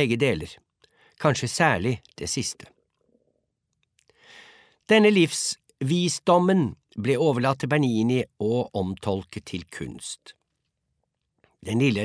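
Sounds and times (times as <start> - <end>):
person speaking: 0.0 - 2.8, 4.8 - 10.4, 11.5 - 12.0
soft intake of breath: 4.1 - 4.8.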